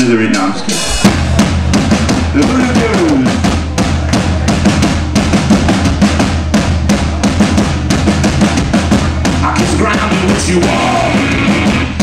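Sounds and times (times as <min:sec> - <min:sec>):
drum kit beat: 0:00.0 - 0:12.0.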